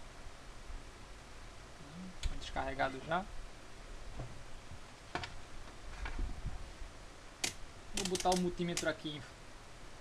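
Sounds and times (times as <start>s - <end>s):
sharp clicks: 7.4s - 9.0s.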